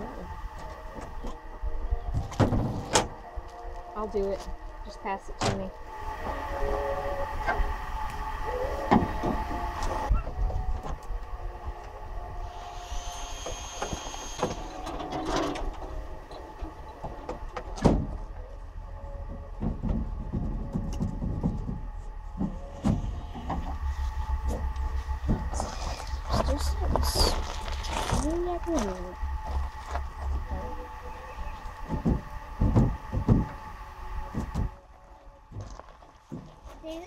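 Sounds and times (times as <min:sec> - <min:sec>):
steady low rumble: 0:00.0 - 0:37.0.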